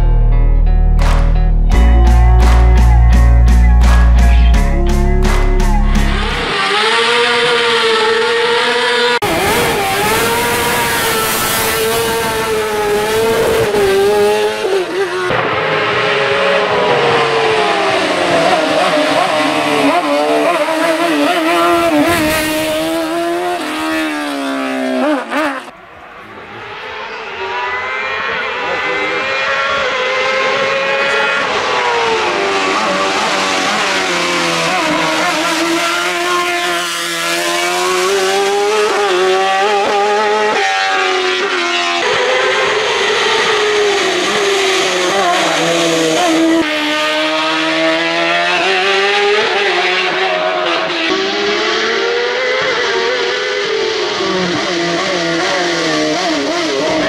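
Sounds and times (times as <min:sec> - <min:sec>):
racing car accelerating: 0:05.0 - 0:57.0.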